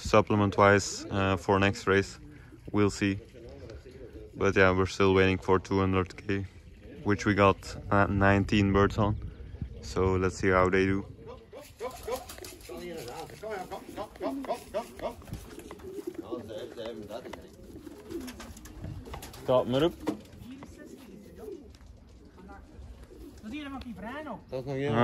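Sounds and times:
pigeons cooing: 0.0 - 25.0.

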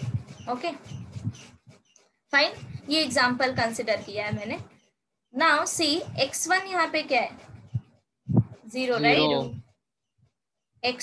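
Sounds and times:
woman speaking: 0.5 - 0.9, 2.4 - 4.7, 5.4 - 7.4, 8.6 - 9.6.

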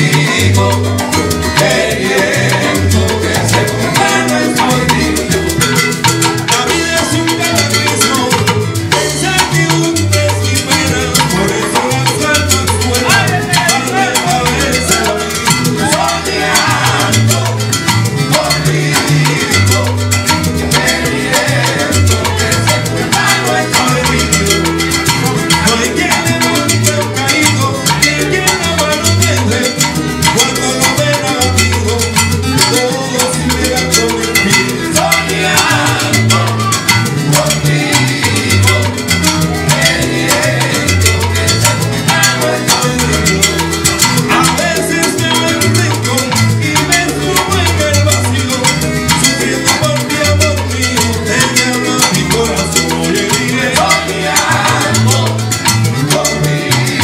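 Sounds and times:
congas: 0.0 - 57.0
guitars: 0.0 - 57.0
maracas: 0.0 - 57.0
salsa band playing live: 0.0 - 57.0
upright bass: 0.0 - 57.0.

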